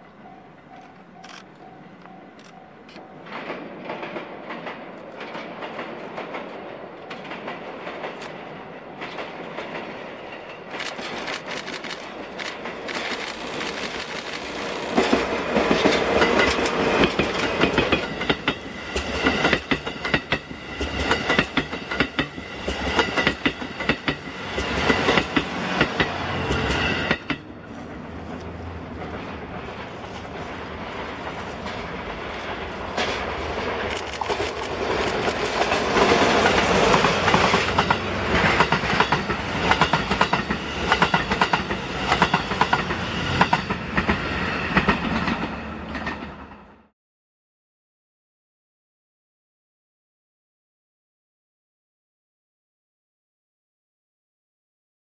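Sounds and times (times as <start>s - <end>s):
diesel locomotive passing: 0.0s - 46.9s
train wheels clicking over rail joints: 0.1s - 46.7s.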